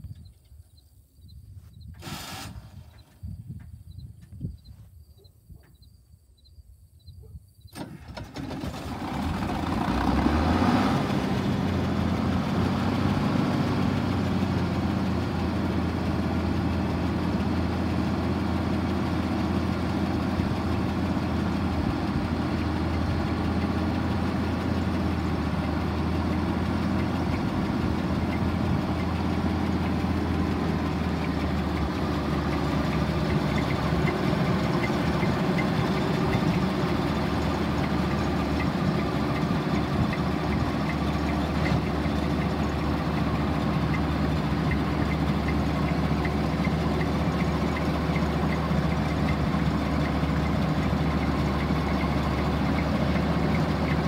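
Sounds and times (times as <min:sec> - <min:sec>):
combine engine idling: 0:07.8 - 0:54.0.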